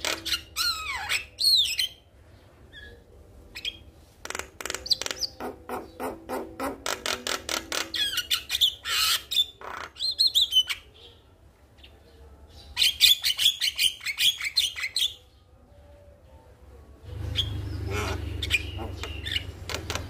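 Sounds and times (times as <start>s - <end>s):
bird harsh squawks: 17.3s - 20.0s.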